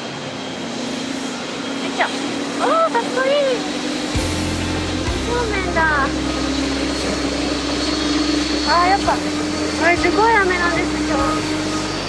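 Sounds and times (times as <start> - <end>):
jet airliners droning: 0.0 - 12.0.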